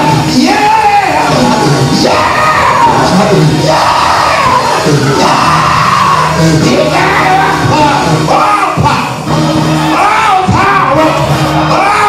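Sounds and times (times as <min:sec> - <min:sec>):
church music: 0:00.0 - 0:12.0
congregation shouting: 0:00.0 - 0:12.0
preacher chanting and singing: 0:00.0 - 0:12.0.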